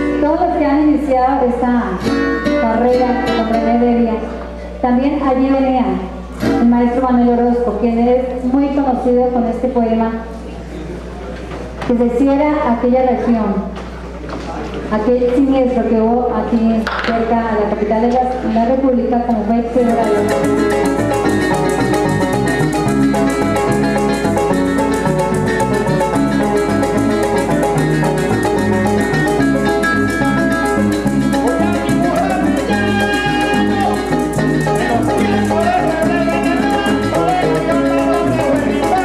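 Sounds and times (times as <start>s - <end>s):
maracas: 19.7s - 39.0s.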